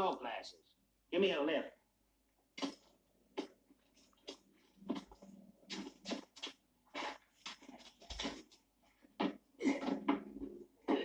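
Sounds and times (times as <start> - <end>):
men grunting and straining breaths: 6.9 - 11.0.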